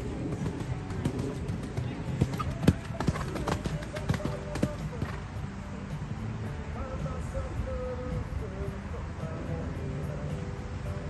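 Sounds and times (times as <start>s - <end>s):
horse hoofbeats on sand: 0.0s - 5.4s.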